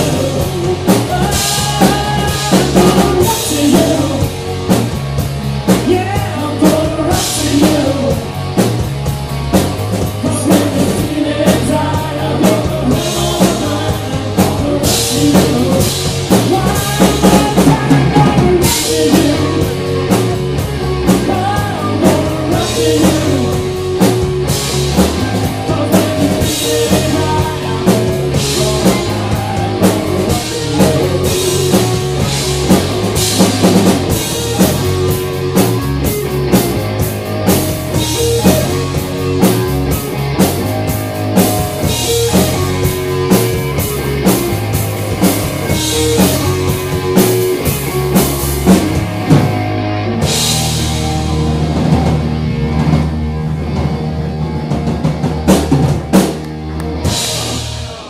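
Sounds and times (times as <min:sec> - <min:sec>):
bass guitar: 0:00.0 - 0:58.0
drum kit beat: 0:00.0 - 0:58.0
electric guitar: 0:00.0 - 0:58.0.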